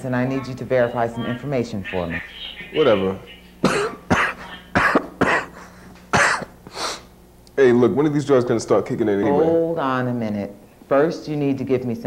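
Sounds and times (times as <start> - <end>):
man coughing into a tissue: 3.6 - 7.1.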